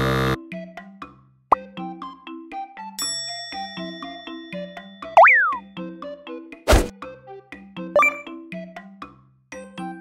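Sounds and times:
harsh buzzer: 0.0s - 0.4s
light plucked music: 4.9s - 6.1s, 7.8s - 8.6s.

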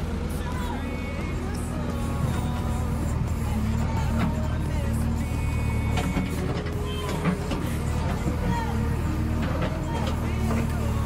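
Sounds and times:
diesel engine drone: 0.0s - 11.0s
music playing: 0.0s - 11.0s.

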